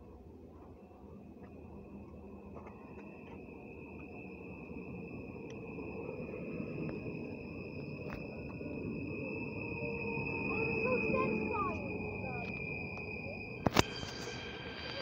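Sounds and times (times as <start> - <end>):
steady high whine: 0.0 - 15.0
train wheels rumbling on rail: 10.6 - 15.0.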